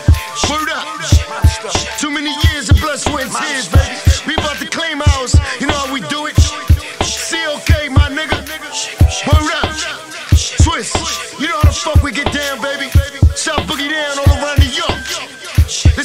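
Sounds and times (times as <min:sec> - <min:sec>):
bassline: 0:00.0 - 0:16.0
rapping: 0:00.1 - 0:16.0
kick drums: 0:02.4 - 0:02.9, 0:03.8 - 0:04.3, 0:05.1 - 0:05.5, 0:06.4 - 0:06.8, 0:07.7 - 0:08.2, 0:09.0 - 0:09.5, 0:10.3 - 0:10.8, 0:11.6 - 0:12.1, 0:13.0 - 0:13.7, 0:14.3 - 0:14.8, 0:15.6 - 0:16.0.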